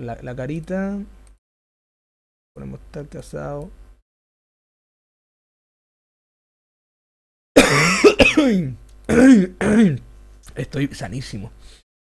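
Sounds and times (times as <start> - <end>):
man clearing throat and coughing: 7.6 - 10.0.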